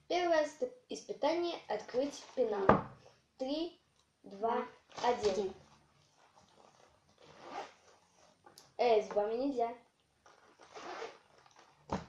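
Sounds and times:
zipper being pulled open: 5.6s - 8.4s, 10.2s - 11.9s.

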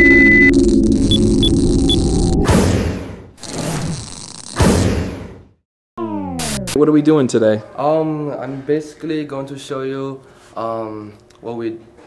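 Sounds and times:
high electronic beep: 0.0s - 2.4s
short high blips: 6.0s - 6.9s
low electronic hum: 6.0s - 7.4s.

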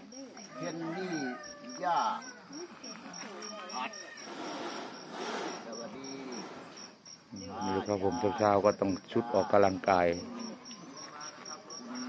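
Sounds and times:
insect chirping: 0.0s - 12.0s
man talking: 7.4s - 12.0s.

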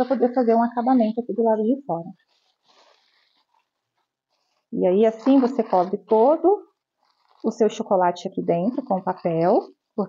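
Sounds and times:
foil wrapping paper crinkling: 2.2s - 6.2s, 6.8s - 7.7s.

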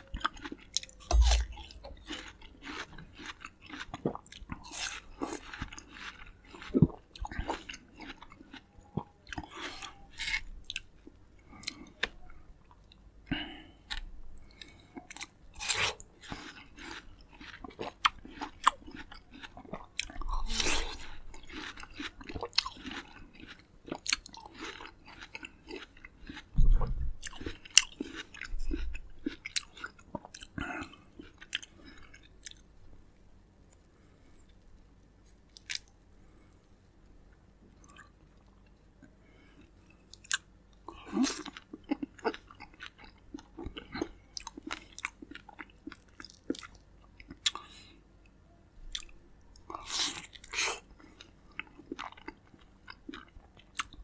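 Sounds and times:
close chewing of juicy fruit: 0.0s - 32.8s, 33.7s - 36.7s, 37.7s - 47.9s, 48.9s - 54.0s
wet fruit tearing open: 1.1s - 1.6s.

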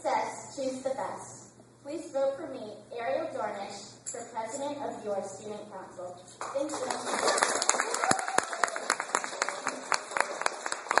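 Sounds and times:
audience applauding: 6.5s - 11.0s.

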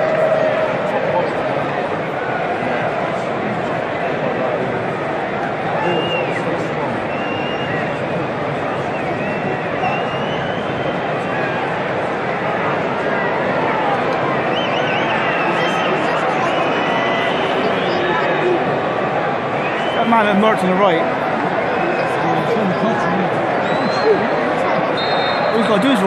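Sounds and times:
stadium crowd chattering and shouting: 0.0s - 26.0s.

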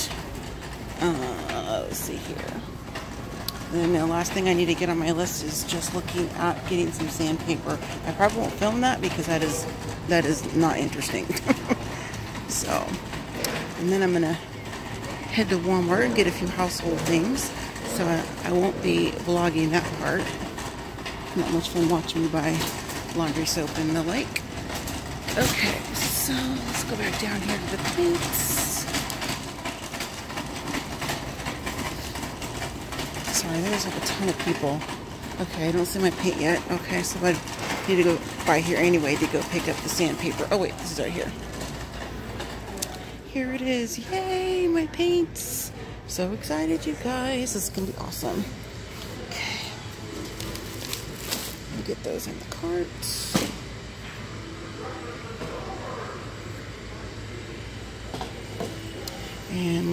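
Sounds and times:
cart basket clattering: 0.0s - 43.2s, 46.8s - 53.6s
shopping cart wheels rumbling: 0.0s - 59.9s.

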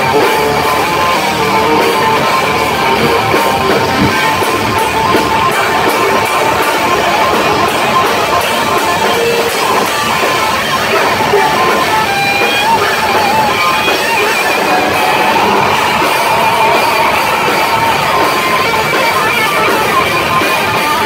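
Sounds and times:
distorted electric guitars: 0.0s - 21.0s
drums: 0.0s - 21.0s
vocals into microphone: 0.0s - 21.0s.

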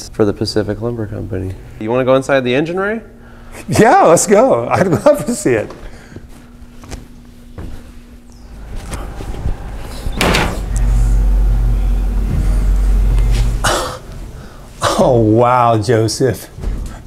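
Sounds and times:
low rumble: 8.3s - 14.8s.

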